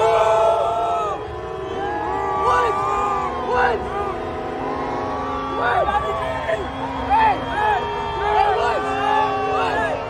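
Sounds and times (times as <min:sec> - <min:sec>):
crowd shouting and whooping: 0:00.0 - 0:10.0.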